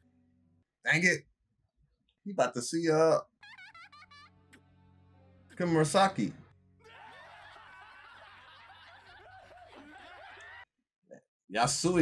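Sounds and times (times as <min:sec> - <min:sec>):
crowd laughing: 0:03.4 - 0:04.6, 0:06.8 - 0:10.7.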